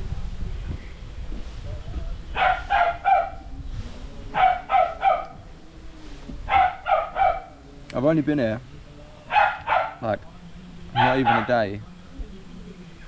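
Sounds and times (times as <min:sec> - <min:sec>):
dog barking: 0:02.3 - 0:03.4, 0:04.3 - 0:05.4, 0:06.5 - 0:07.6, 0:09.3 - 0:10.1, 0:10.9 - 0:11.6.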